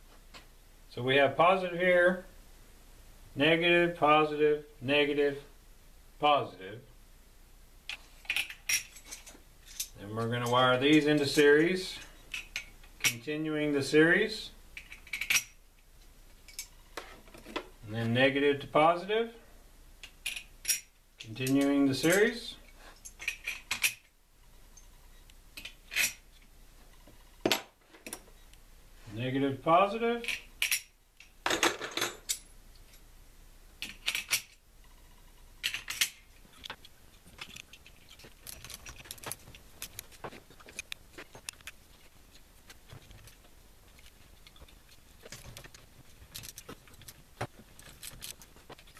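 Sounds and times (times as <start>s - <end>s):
metal hardware clinking: 14.8s - 15.6s, 35.6s - 41.8s.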